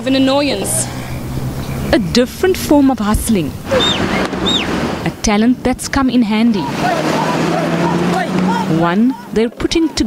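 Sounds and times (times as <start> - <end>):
faint voices: 0.0 - 10.0
vehicle engine running: 0.0 - 10.0.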